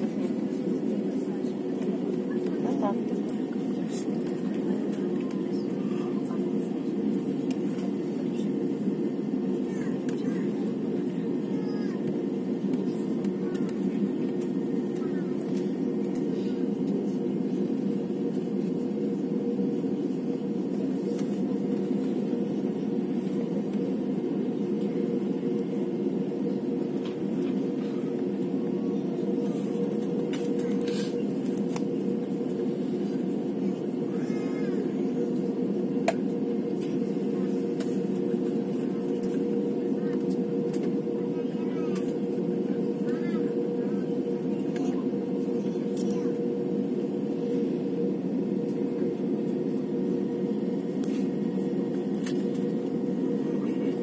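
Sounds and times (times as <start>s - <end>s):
airliner engines humming in cabin: 0.0s - 54.0s.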